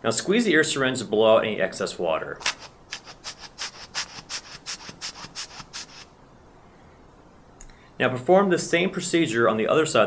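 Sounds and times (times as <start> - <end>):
rubber bulb blowing hissing spurts: 2.4 - 6.2.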